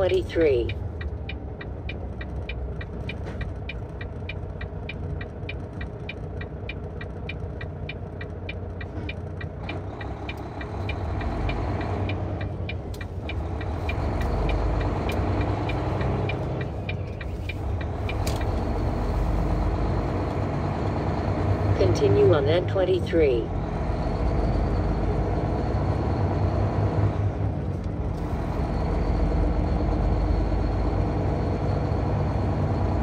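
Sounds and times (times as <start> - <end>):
turn signal ticking: 0.0 - 23.6
car engine rumble: 0.0 - 33.0.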